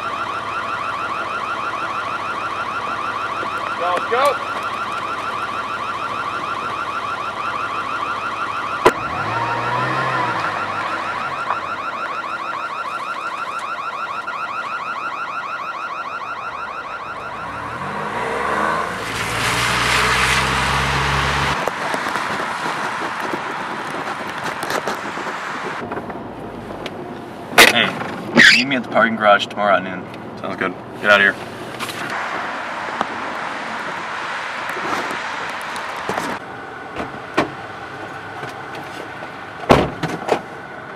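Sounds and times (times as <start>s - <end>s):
electronic alarm warbling: 1.1s - 12.5s, 16.0s - 19.1s
car tyres hissing on wet road: 19.0s - 21.5s.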